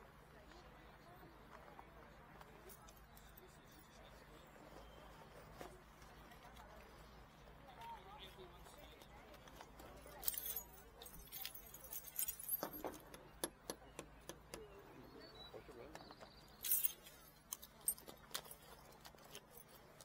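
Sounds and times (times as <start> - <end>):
metal jewellery clinking: 9.8 - 13.3, 16.5 - 20.0.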